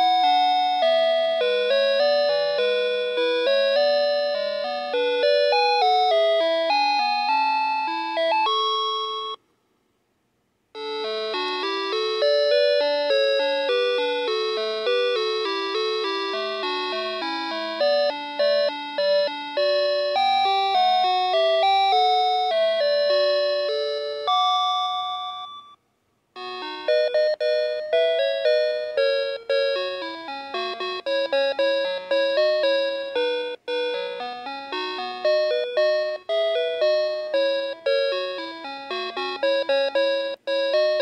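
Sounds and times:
toy playing electronic lullaby: 0.0 - 9.4, 10.8 - 25.8, 26.4 - 41.0.

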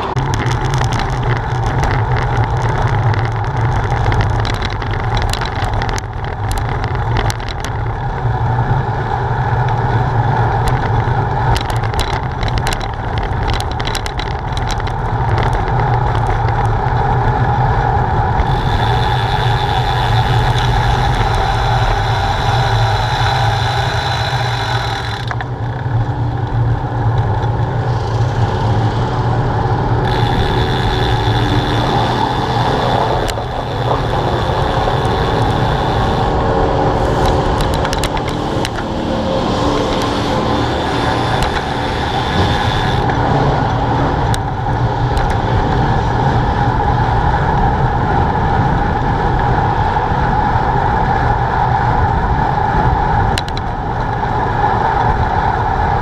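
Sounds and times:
bicycle tyre hum: 0.0 - 56.0
wind rushing on microphone: 0.0 - 56.0.

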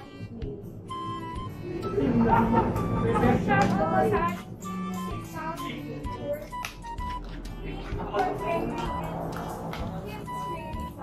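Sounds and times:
background music accompaniment: 0.0 - 11.0.

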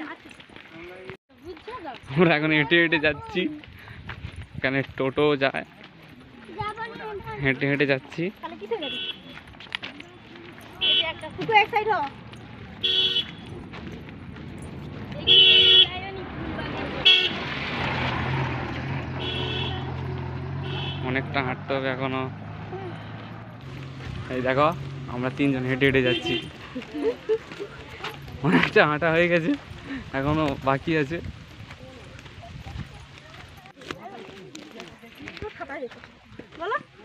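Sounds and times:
people talking and calling out: 0.0 - 37.0
van horn tooting: 8.6 - 9.4, 10.7 - 11.4, 12.8 - 13.5, 15.2 - 16.1, 17.0 - 17.5, 19.1 - 21.5, 25.7 - 26.8
van engine humming: 16.2 - 29.0.

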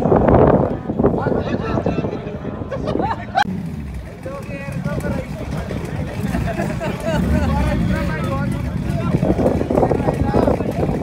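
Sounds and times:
people talking: 0.6 - 11.0
car engines idling: 3.1 - 11.0.

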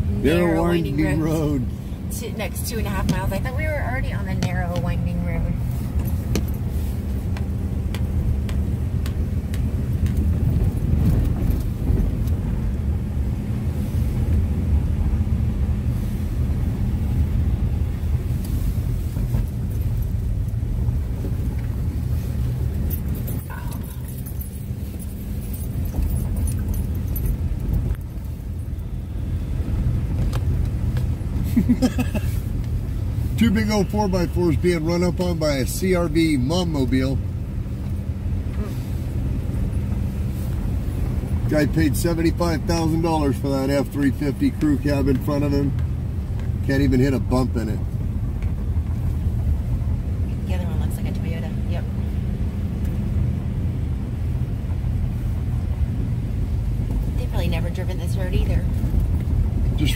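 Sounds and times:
car driving on gravel road: 0.0 - 59.9
engine low drone: 0.0 - 59.9
tyre and road noise: 0.0 - 59.9.

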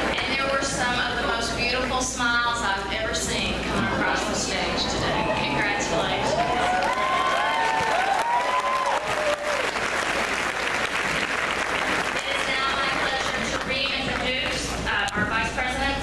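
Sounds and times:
crowd whooping: 4.0 - 10.3
crowd applauding: 5.1 - 14.4.

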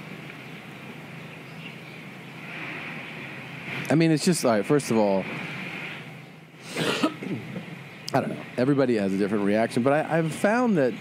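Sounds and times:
person coughing: 6.7 - 7.5.

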